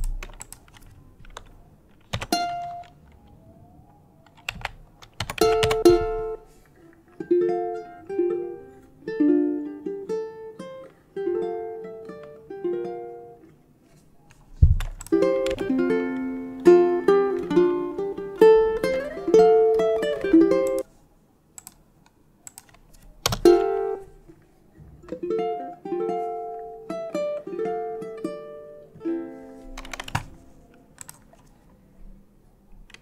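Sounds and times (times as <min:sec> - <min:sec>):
fingerpicked ukulele: 0:02.3 - 0:03.0, 0:05.4 - 0:13.7, 0:14.6 - 0:20.8, 0:23.3 - 0:30.9
faint keyboard clicks: 0:14.3 - 0:15.7, 0:21.6 - 0:23.4, 0:29.8 - 0:31.8, 0:32.7 - 0:33.0.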